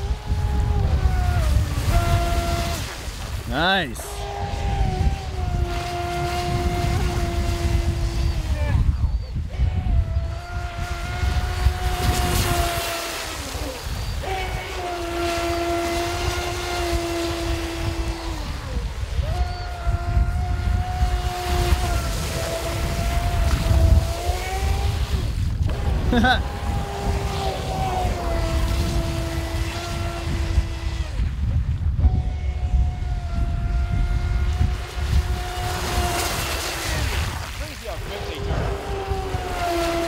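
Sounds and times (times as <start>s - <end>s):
boat motor high-pitched whine: 0.0s - 40.0s.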